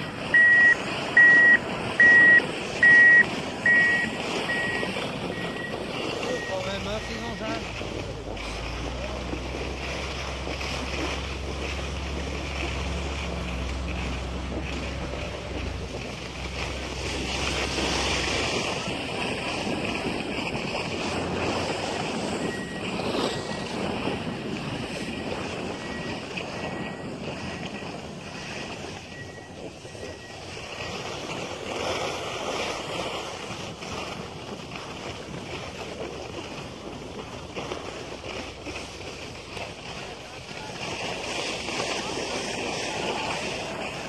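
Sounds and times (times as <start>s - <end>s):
wind buffeting microphone: 0.0s - 44.0s.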